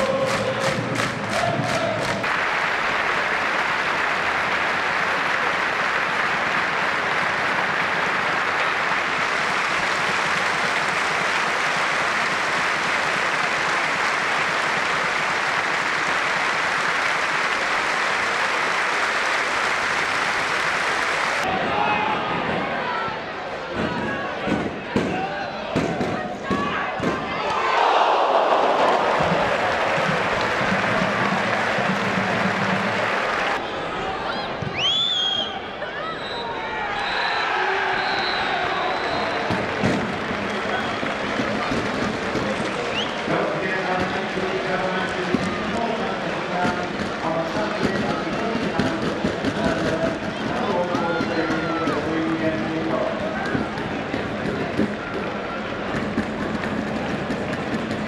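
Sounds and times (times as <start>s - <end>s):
crowd noise: 0.0s - 58.0s.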